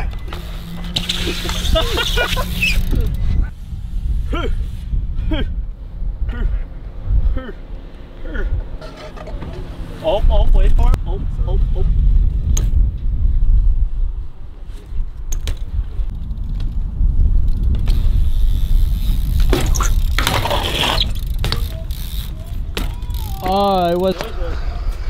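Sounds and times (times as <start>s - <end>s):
rear hub ratcheting: 0.0s - 3.2s, 17.6s - 23.7s
bike rolling on concrete: 0.0s - 25.0s.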